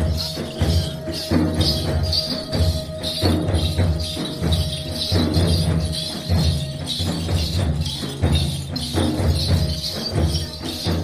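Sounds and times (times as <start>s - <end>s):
folk dance music: 0.0s - 11.0s
heavy drumming: 0.0s - 11.0s
held tone: 0.0s - 11.0s
jingling: 0.0s - 11.0s.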